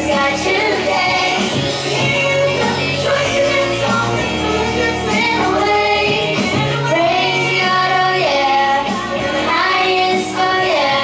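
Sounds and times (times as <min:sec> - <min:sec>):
girls singing together: 0:00.0 - 0:11.0
musical accompaniment: 0:00.0 - 0:11.0.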